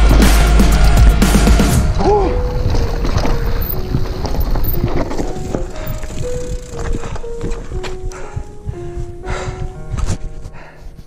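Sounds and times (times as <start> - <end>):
wind rumble on microphone: 1.8 - 11.0
tyres crunching on gravel: 2.3 - 8.5
bike frame rattling: 2.4 - 8.0.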